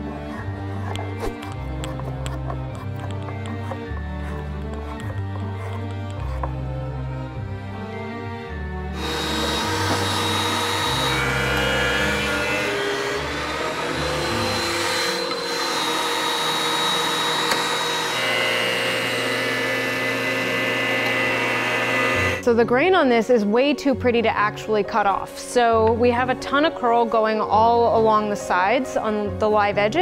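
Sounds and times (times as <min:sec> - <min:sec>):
thickness planer running: 0:00.0 - 0:08.0, 0:08.9 - 0:22.4.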